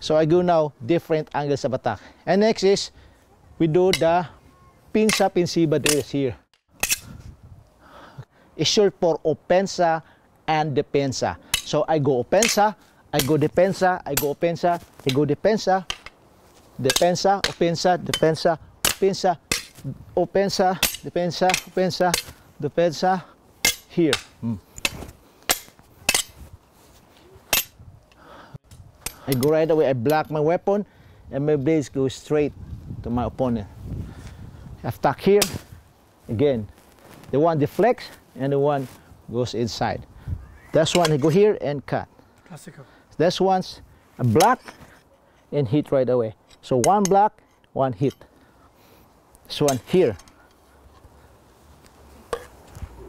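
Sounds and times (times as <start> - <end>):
wooden swords clacking: 3.9 - 4.2, 5.0 - 6.2, 6.8 - 7.1, 11.5 - 16.2, 16.8 - 19.9, 20.5 - 22.4, 23.6 - 26.4, 27.5 - 27.8, 40.8 - 41.4, 44.2 - 44.9, 49.5 - 50.6.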